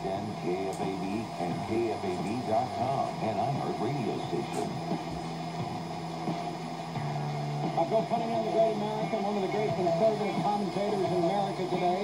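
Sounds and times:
radio static: 0.0 - 12.0
steady low hum: 0.0 - 12.0.

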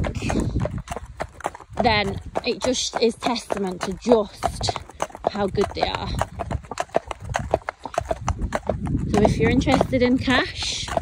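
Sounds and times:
hooves clip-clopping on tarmac: 0.0 - 11.0.

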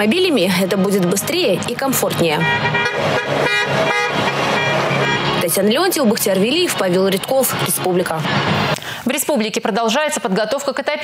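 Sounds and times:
van horns blasting together: 2.3 - 5.5.

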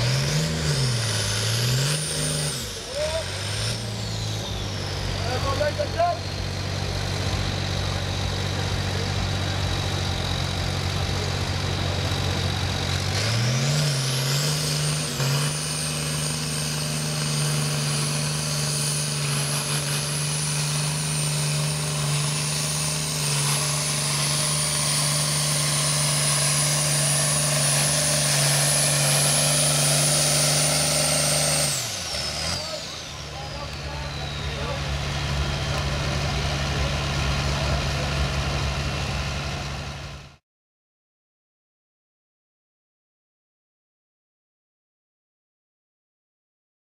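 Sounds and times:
diesel tractor engine revving: 0.0 - 40.4
high whistle: 32.6 - 36.0.

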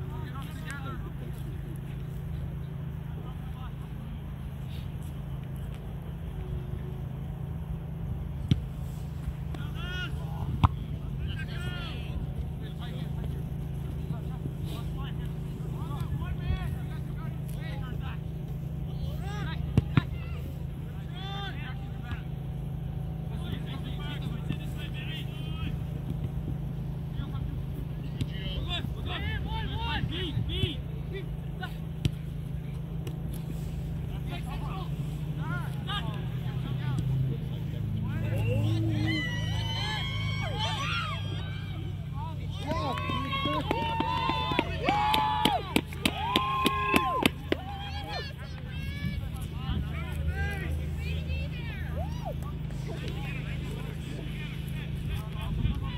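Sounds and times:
distant shouts and calls: 33.5 - 55.9.

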